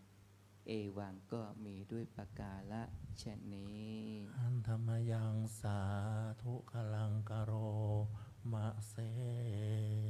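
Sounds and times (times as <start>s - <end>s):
monk chanting in low voice: 0.6s - 10.0s.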